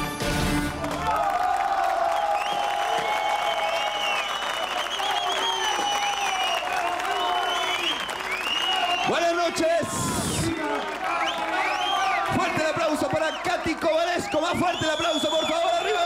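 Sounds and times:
music: 0:00.0 - 0:01.1
audience applauding: 0:00.3 - 0:16.0
cheering voices: 0:00.6 - 0:16.0.

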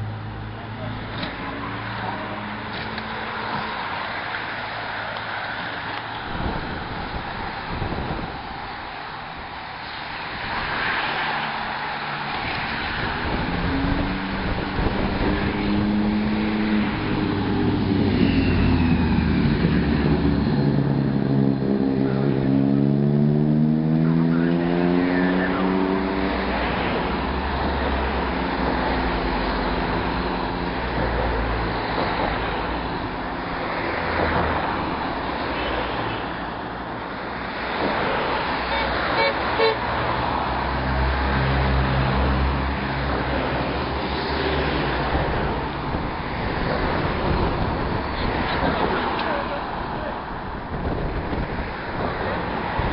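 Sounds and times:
cars and motorbikes driving past: 0:00.0 - 0:52.9
road noise: 0:00.0 - 0:52.9.

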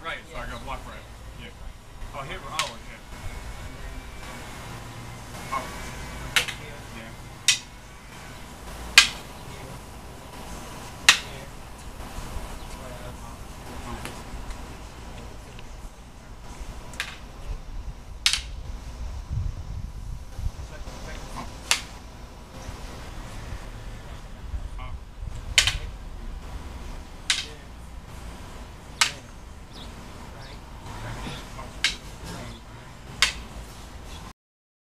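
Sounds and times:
wooden sticks clacking together: 0:06.3 - 0:06.6, 0:07.4 - 0:07.7, 0:11.0 - 0:11.4, 0:18.2 - 0:18.6, 0:25.5 - 0:25.9, 0:27.2 - 0:27.6, 0:29.0 - 0:29.3, 0:31.3 - 0:32.4, 0:33.2 - 0:33.5.

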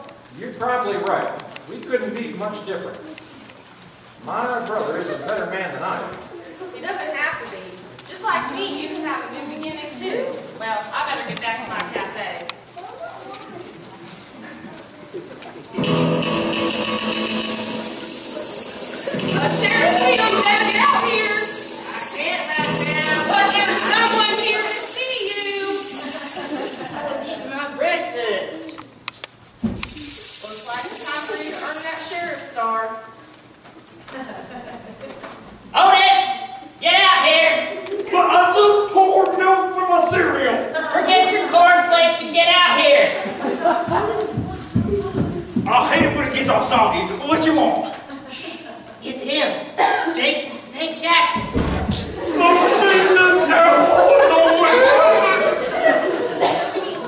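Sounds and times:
person speaking: 0:15.7 - 0:27.2.

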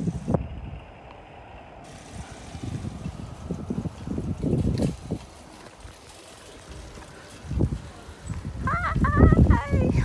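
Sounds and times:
wind gusts on microphone: 0:00.0 - 0:10.0.

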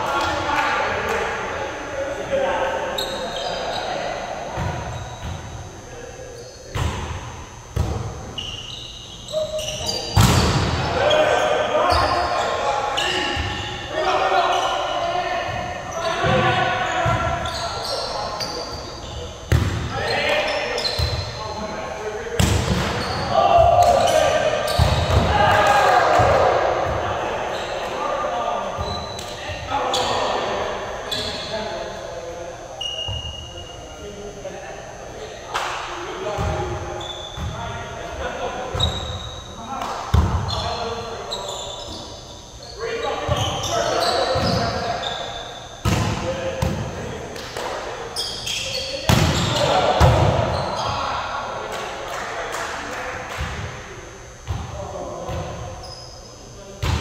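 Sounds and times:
players calling and chatting: 0:00.0 - 0:57.0
volleyball hits ringing in a gym: 0:00.0 - 0:57.0.

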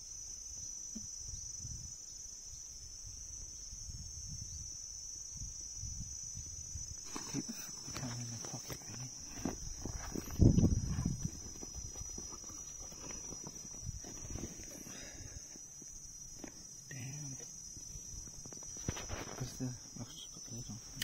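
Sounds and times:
high-pitched insect chorus: 0:00.0 - 0:21.0.

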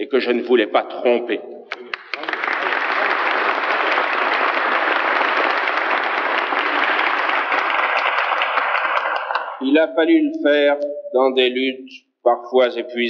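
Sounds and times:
audience applauding: 0:01.7 - 0:09.8.

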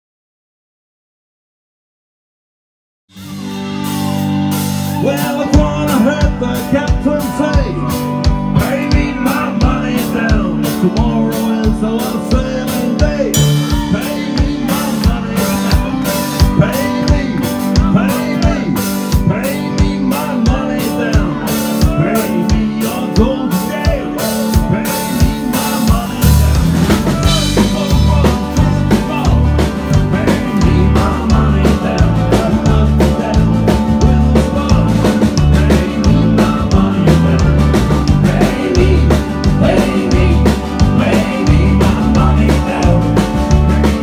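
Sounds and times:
live rock band playing: 0:03.1 - 0:44.0
melodic lead line: 0:03.1 - 0:44.0
drum kit steady beat: 0:03.2 - 0:44.0
deep bass part: 0:11.8 - 0:19.4, 0:25.9 - 0:44.0.

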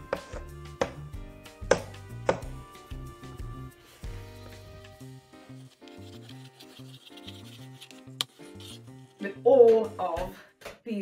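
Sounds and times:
background music with bass line: 0:00.0 - 0:05.6
chalk tapping and scraping: 0:04.5 - 0:09.2.

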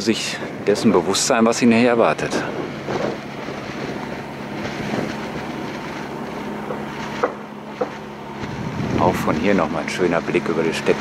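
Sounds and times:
low engine hum: 0:00.0 - 0:11.0
outdoor background noise: 0:00.0 - 0:11.0
short knocks: 0:06.6 - 0:08.0.

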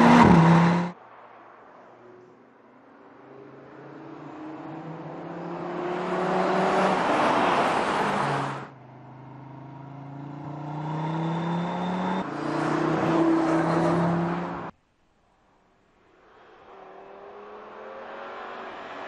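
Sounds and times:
car engine accelerating: 0:00.0 - 0:01.0, 0:03.5 - 0:14.7.

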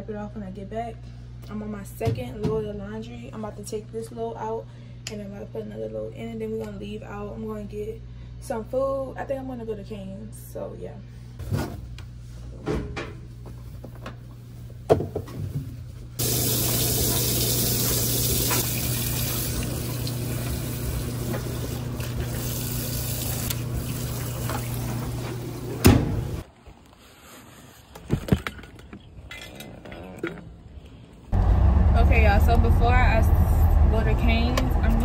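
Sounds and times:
washing machine hum: 0:11.4 - 0:26.5, 0:31.3 - 0:35.0
water rushing into washing machine: 0:16.2 - 0:26.4
washing machine clunk: 0:24.2 - 0:26.4.

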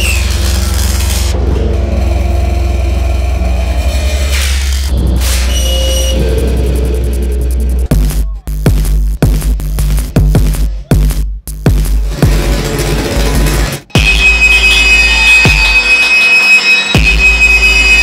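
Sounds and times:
synthesizer noise sweeps: 0:00.0 - 0:07.9, 0:12.7 - 0:18.0
heavy bass drone: 0:00.0 - 0:18.0.

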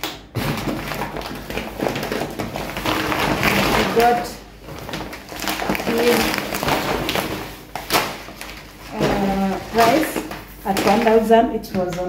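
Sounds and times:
plastic bag rustling: 0:00.0 - 0:12.0.

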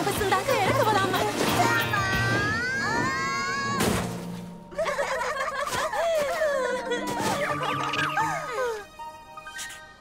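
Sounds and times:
background music: 0:00.0 - 0:10.0
characters laughing: 0:04.7 - 0:08.9.

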